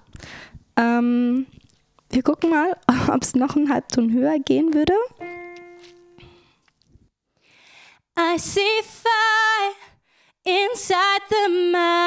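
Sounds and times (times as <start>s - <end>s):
digital piano note: 5.2s - 6.5s.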